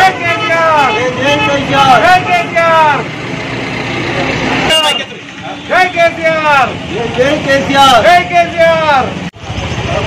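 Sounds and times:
man shouting loudly: 0:00.0 - 0:03.1, 0:05.7 - 0:09.2
street noise: 0:00.0 - 0:10.0.

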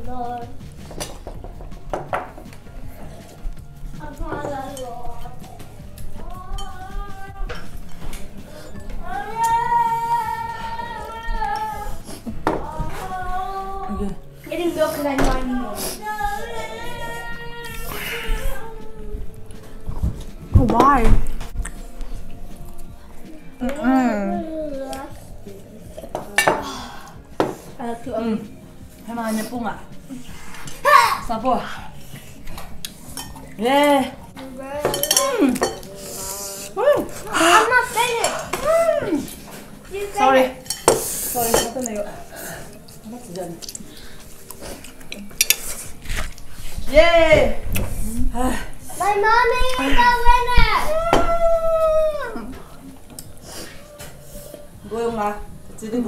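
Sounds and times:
chopsticks and dishes clinking: 0:00.8 - 0:09.8, 0:25.0 - 0:27.8, 0:32.0 - 0:46.8
person humming: 0:23.3 - 0:24.7, 0:35.2 - 0:37.6.

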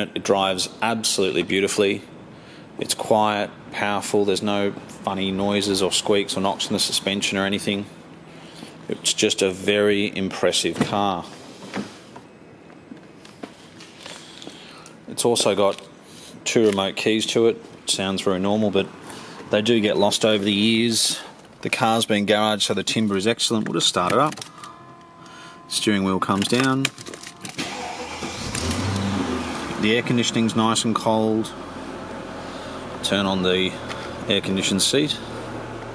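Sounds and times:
car engine starting and idling: 0:24.2 - 0:35.9.

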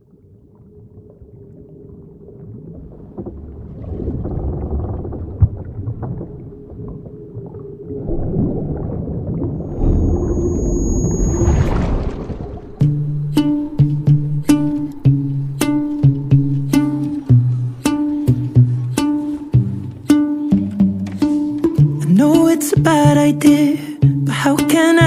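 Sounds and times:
rumbling ambient swell: 0:08.0 - 0:19.0
song: 0:12.8 - 0:25.0.

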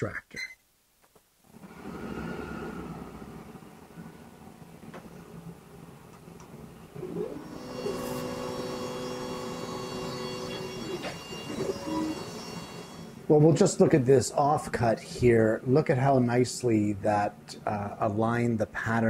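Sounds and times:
laser head whine: 0:07.0 - 0:13.4
fume extractor fan running: 0:07.0 - 0:14.0.

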